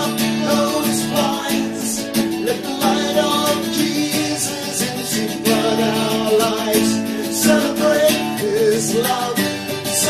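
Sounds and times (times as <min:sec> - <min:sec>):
acoustic guitar strummed: 0:00.0 - 0:10.0
man singing a hymn: 0:00.0 - 0:10.0.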